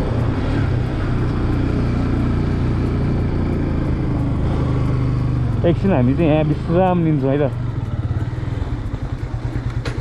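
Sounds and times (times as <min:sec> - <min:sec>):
motorcycle engine running: 0:00.0 - 0:10.0
wind rush and road noise: 0:00.0 - 0:10.0.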